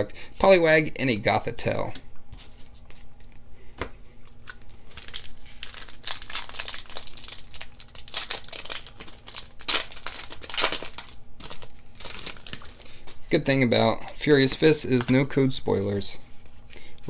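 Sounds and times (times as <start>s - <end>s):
foil wrapper crinkling and tearing: 4.4s - 13.1s.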